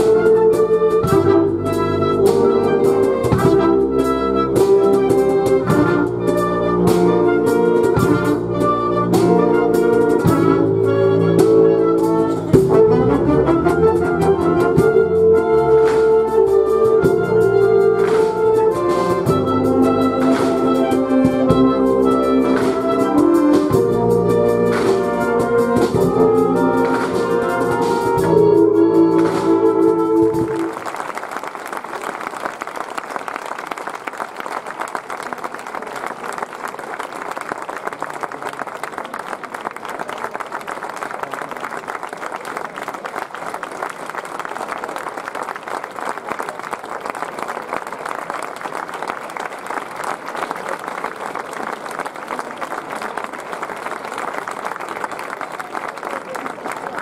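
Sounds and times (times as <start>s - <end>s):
audience applauding: 17.5s - 57.0s.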